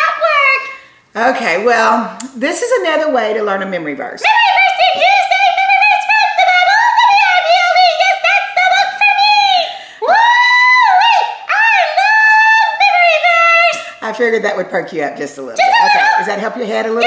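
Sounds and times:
high squeaky voice singing: 0:04.2 - 0:09.4.

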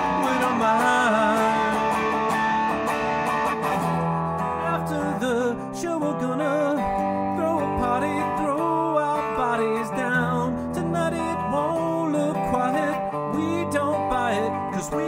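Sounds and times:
electric guitar through amp: 0:00.0 - 0:15.0.

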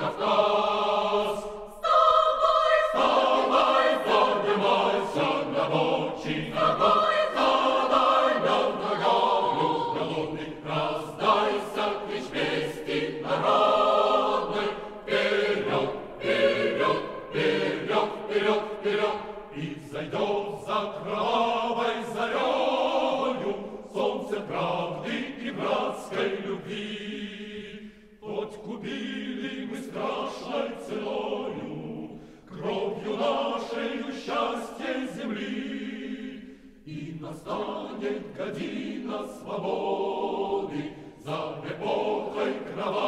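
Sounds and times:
choir singing sustained chords: 0:00.0 - 0:43.0.

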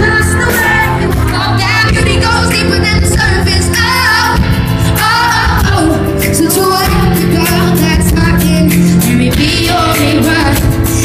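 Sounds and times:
band playing pop music: 0:00.0 - 0:11.0
woman singing: 0:00.0 - 0:11.0.

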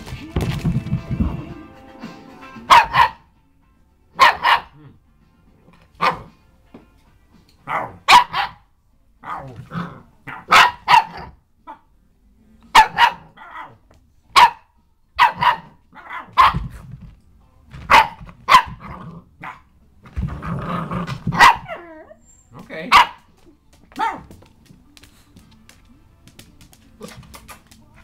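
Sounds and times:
puppy barking: 0:02.7 - 0:03.3, 0:04.2 - 0:05.0, 0:06.0 - 0:06.3, 0:07.6 - 0:09.6, 0:10.2 - 0:11.9, 0:12.7 - 0:16.7, 0:17.9 - 0:19.7, 0:21.3 - 0:22.0, 0:22.9 - 0:23.3, 0:23.9 - 0:24.4
puppy growling: 0:09.2 - 0:10.5, 0:18.8 - 0:22.2.

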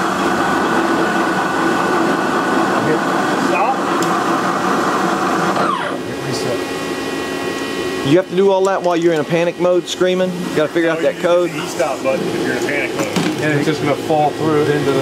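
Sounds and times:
falling whine: 0:00.0 - 0:15.0
milling machine whirring: 0:00.0 - 0:15.0.

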